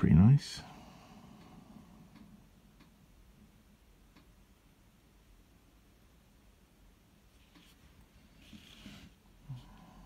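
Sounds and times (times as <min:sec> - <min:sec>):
faint ticks: 0:01.4 - 0:03.0.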